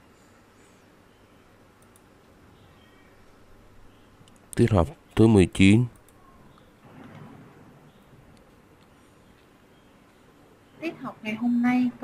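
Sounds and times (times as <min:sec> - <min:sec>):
faint low room hum: 0:00.0 - 0:12.0
computer mouse clicking: 0:01.8 - 0:02.1, 0:05.9 - 0:07.2.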